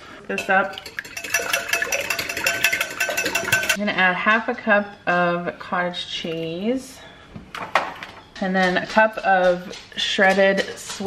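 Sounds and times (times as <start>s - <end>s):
eggs beaten in glass bowl: 0.3s - 3.8s.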